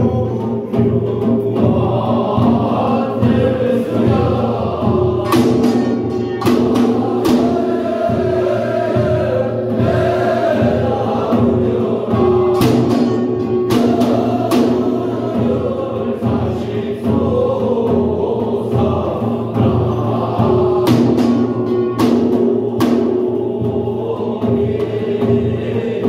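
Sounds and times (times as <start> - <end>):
hand drums: 0.0 - 26.0
sharp percussion strikes: 0.0 - 26.0.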